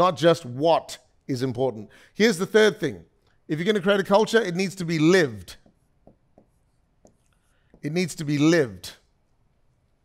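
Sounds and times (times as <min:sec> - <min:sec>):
man talking: 0:00.0 - 0:05.7, 0:07.8 - 0:09.0
pen tapping on screen: 0:05.5 - 0:08.0.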